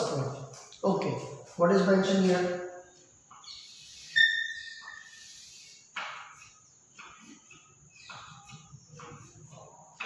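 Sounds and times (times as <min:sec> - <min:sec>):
chalk scratching on chalkboard: 0:00.0 - 0:10.0
chalk high squeak: 0:01.8 - 0:06.6.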